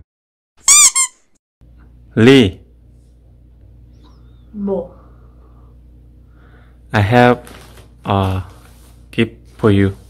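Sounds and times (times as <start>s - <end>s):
high-pitched squeaks: 0.6s - 1.3s.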